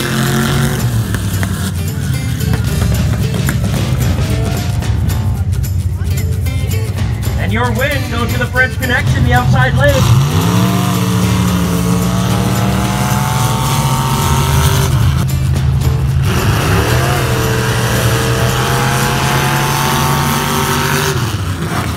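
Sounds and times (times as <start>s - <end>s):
truck engines revving: 0.0s - 21.9s.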